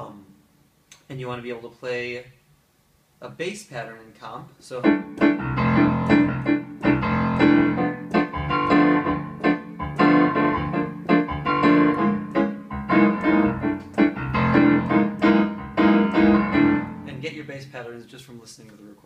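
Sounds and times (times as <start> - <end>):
bossa nova on piano: 4.8 - 17.2.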